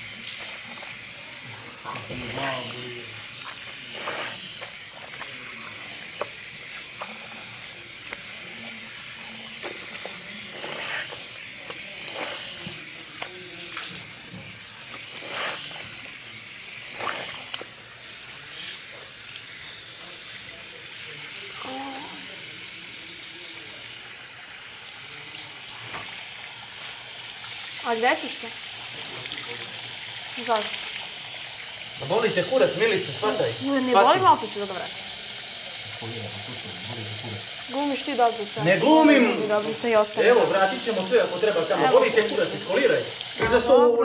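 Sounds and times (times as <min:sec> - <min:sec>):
tap water running into basin: 0:00.0 - 0:44.0.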